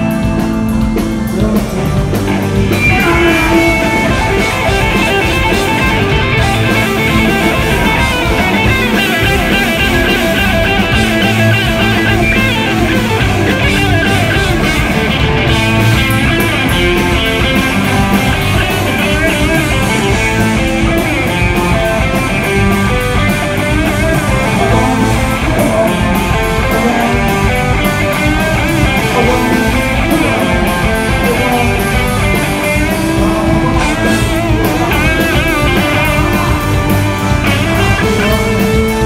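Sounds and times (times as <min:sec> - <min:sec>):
electric guitar: 0:00.0 - 0:39.0
live rock band playing: 0:00.0 - 0:39.0.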